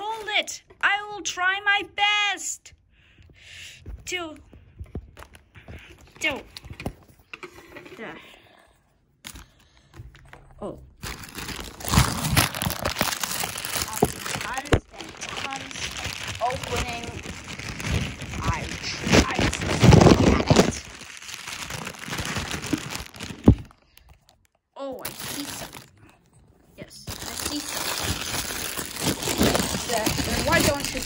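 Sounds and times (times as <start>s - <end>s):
plastic bag crinkling: 10.9s - 26.2s, 26.8s - 31.0s.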